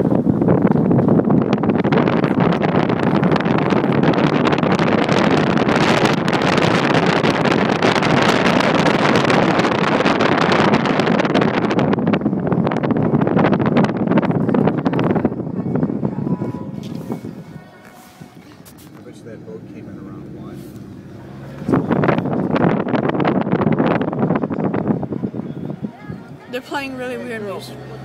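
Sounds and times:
road noise from moving car: 0:00.0 - 0:28.0
wind buffeting microphone: 0:00.0 - 0:28.0.

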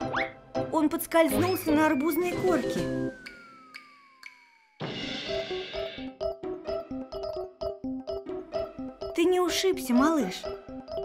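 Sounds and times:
bouncy children's music: 0:00.0 - 0:11.0
cartoon crash sound effect: 0:04.8 - 0:06.0.

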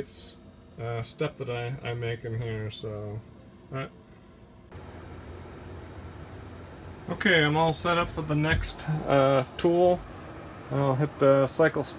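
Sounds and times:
faint background hum and hiss: 0:00.0 - 0:11.9.

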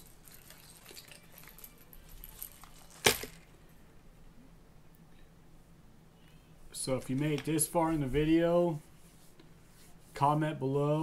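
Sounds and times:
fishing tackle clicks and rustles: 0:00.0 - 0:03.6.

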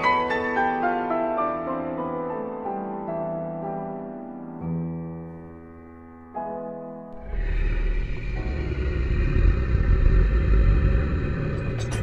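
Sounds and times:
deep rumble with hiss: 0:07.2 - 0:12.0.

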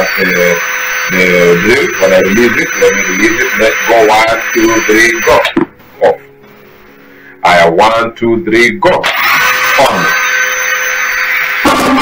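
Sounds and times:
cordless drill whining: 0:00.0 - 0:05.6, 0:09.0 - 0:12.0.

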